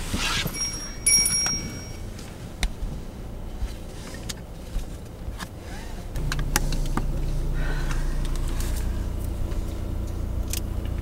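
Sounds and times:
car engine running low: 0:00.0 - 0:11.0
high electronic chime tone: 0:00.5 - 0:02.1.

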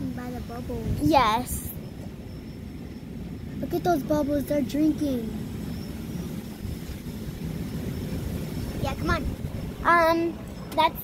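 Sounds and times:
distant engines rumbling: 0:00.0 - 0:11.0.

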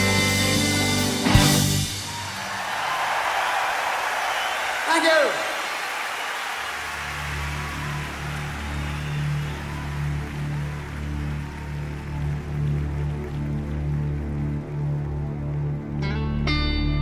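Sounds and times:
arena crowd noise: 0:00.0 - 0:16.0.

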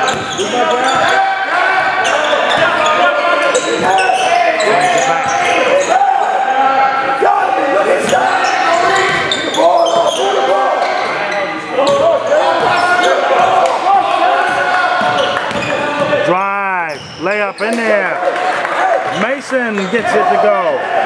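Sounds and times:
players calling out: 0:00.0 - 0:21.0.

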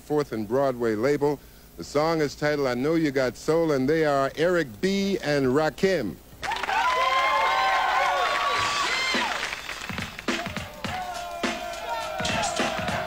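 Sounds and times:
audience cheering and screaming: 0:06.4 - 0:13.0
hip-hop beat: 0:09.1 - 0:13.0.

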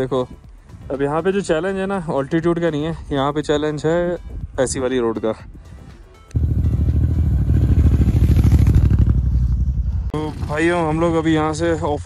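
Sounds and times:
motorcycle engine running: 0:06.4 - 0:11.2.

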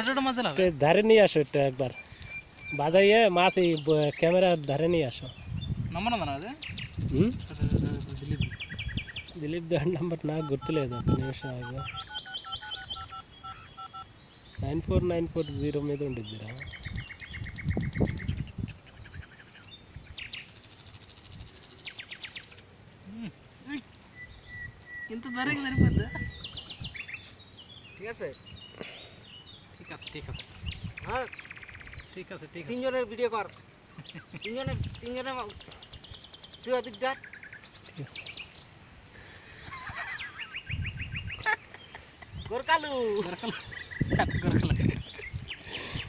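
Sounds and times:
small birds trilling: 0:00.0 - 0:46.0.

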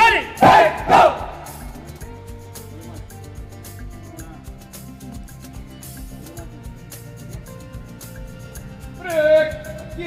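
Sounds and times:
cadets shouting drill calls: 0:00.0 - 0:01.6
background music: 0:00.0 - 0:10.0.

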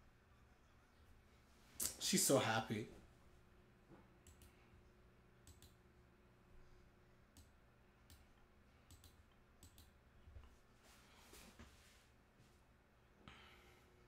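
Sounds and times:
small clicks: 0:05.4 - 0:05.8, 0:08.1 - 0:10.5.

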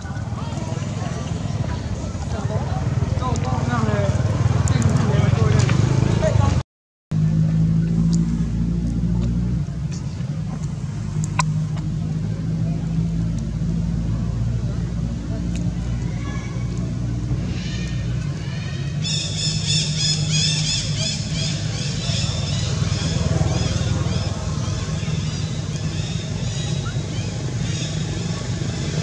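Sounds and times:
low motor hum: 0:07.2 - 0:29.0.

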